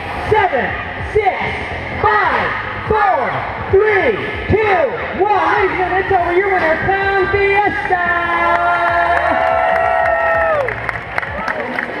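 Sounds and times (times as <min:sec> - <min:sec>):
crowd cheering: 0:07.8 - 0:12.0
voices whooping: 0:08.2 - 0:11.8.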